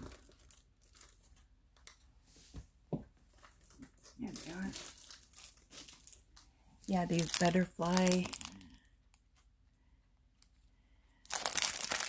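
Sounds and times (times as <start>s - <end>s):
plastic bag crinkling: 0.0s - 2.0s, 3.3s - 9.2s, 11.2s - 12.0s.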